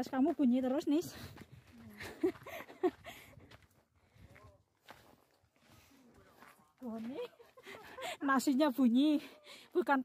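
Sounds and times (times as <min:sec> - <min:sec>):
footsteps on stone steps: 0:00.0 - 0:09.2.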